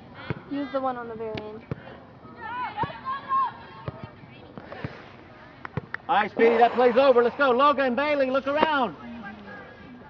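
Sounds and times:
murmur of distant voices: 0.0 - 10.0.

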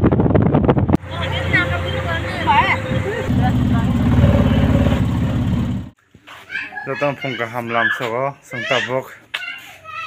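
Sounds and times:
vehicle engine running: 0.9 - 6.0.

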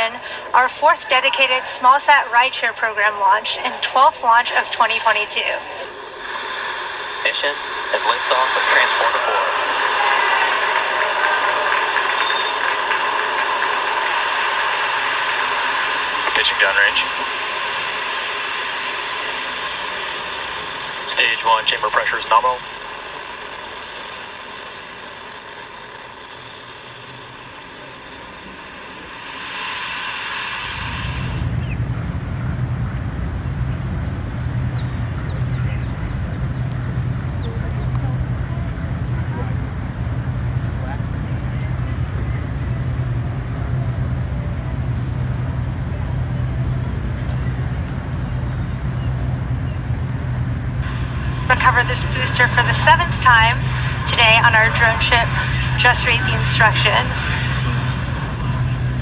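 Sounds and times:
low engine drone: 0.0 - 59.0.

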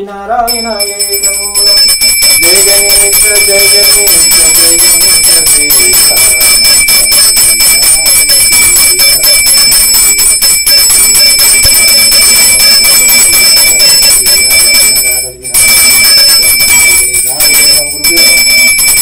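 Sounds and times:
hand bell ringing rapidly: 0.5 - 19.0.

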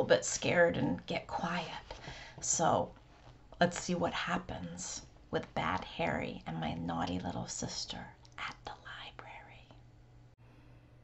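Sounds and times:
woman whispering: 7.8 - 9.8.

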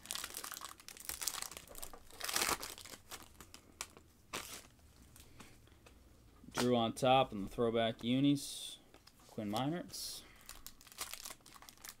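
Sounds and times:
plastic wrapper crinkling and tearing: 0.0 - 5.2, 10.4 - 12.0.

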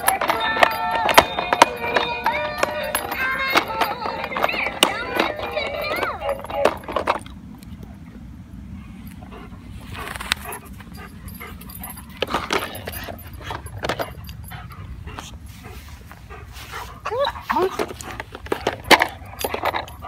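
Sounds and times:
steady low rumble: 2.2 - 20.0
dog chewing plastic toy: 17.6 - 20.0.

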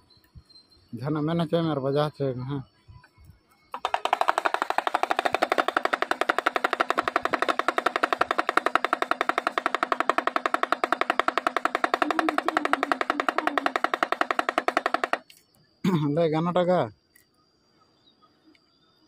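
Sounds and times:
pellet drum rattling: 3.7 - 15.3.

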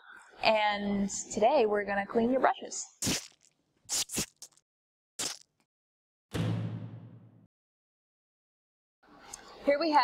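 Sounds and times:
paint splat sound effects: 3.0 - 4.6, 5.2 - 5.6.

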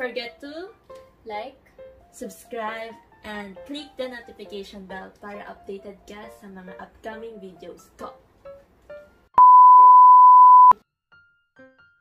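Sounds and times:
electronic bleep: 9.4 - 10.8.

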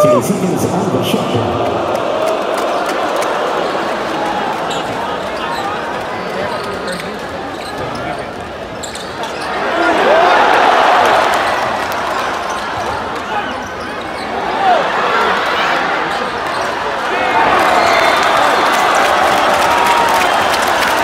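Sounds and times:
arena crowd noise: 0.0 - 21.0
short squeaks: 6.4 - 9.6.

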